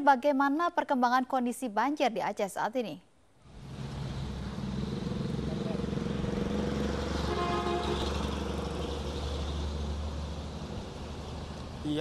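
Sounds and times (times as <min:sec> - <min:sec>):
vehicle engines running: 0:03.4 - 0:12.0.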